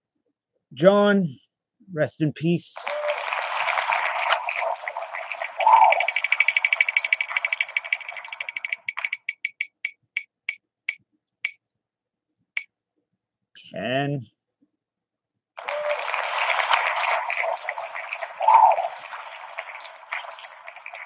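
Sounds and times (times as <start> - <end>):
spinning wheel ticking: 4.0 - 11.0.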